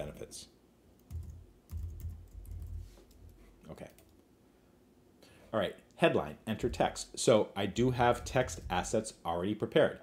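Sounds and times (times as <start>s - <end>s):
typing on a keyboard: 1.0s - 4.2s.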